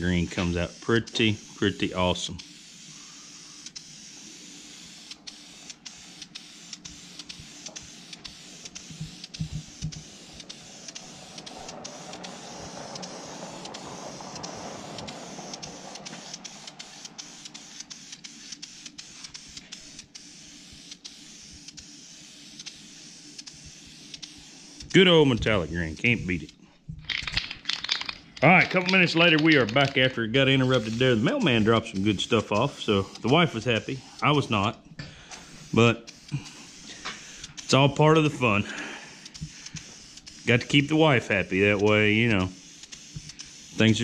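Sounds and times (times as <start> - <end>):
aerosol spray paint hissing: 0.0 - 26.5, 28.4 - 44.0.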